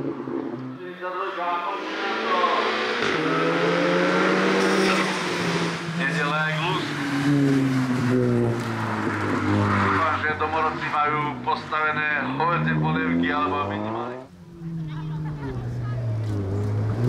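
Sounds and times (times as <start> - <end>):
race car engine revving: 0.0 - 17.0.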